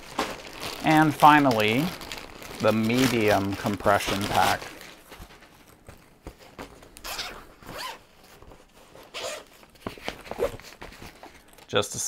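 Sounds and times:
zipper being unzipped: 7.0s - 8.1s, 9.1s - 9.5s, 10.2s - 10.7s.

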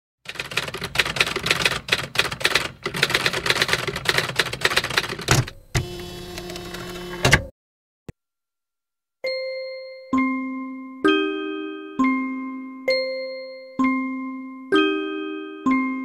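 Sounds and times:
keyboard typing: 0.3s - 7.5s.

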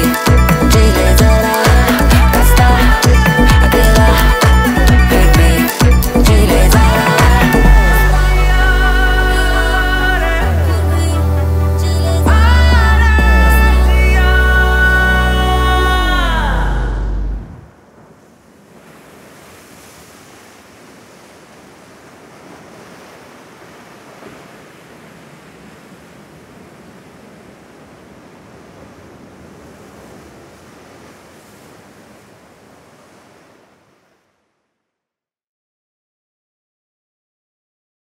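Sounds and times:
waves washing on shore: 17.6s - 34.5s.

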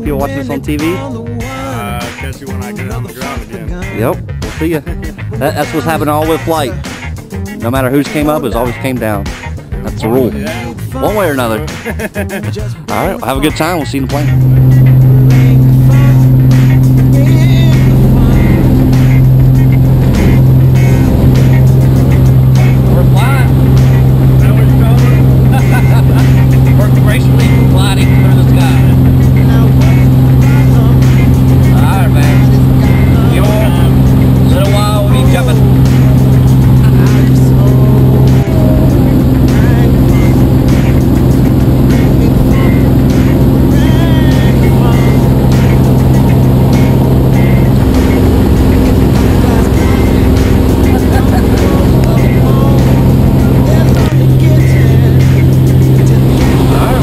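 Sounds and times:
plane engine and propeller drone: 0.0s - 57.0s.

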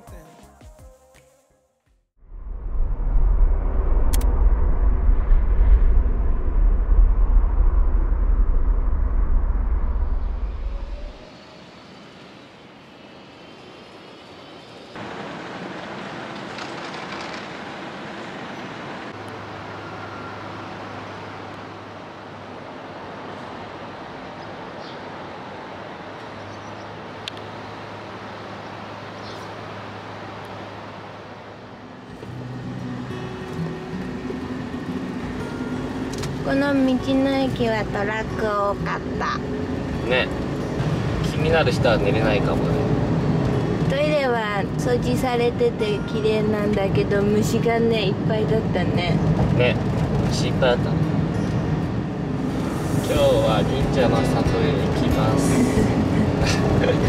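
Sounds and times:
diesel lorries idling: 51.0s - 57.0s.

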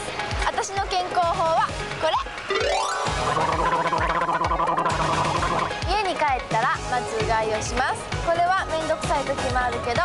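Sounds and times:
background music with beat: 1.6s - 10.0s
person gargling: 3.2s - 5.8s.

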